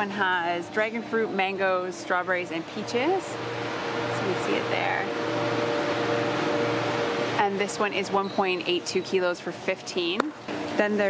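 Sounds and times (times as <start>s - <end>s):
freezer machine hum and hiss: 0.0s - 11.0s.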